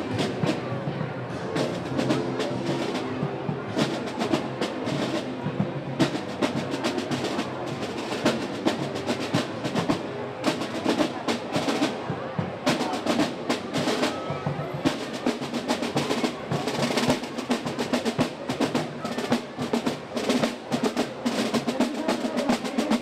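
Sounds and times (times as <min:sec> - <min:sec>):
crowd voices: 0:00.0 - 0:23.0
marching snare drums: 0:00.0 - 0:23.0.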